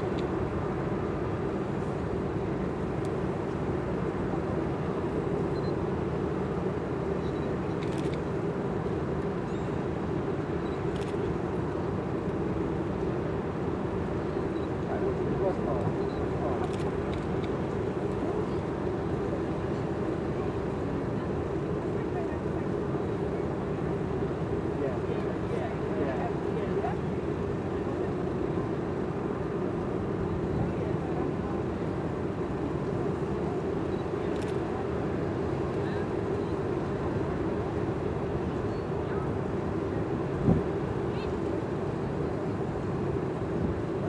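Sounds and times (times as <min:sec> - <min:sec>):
faint indistinct voices: 0:17.8 - 0:44.0.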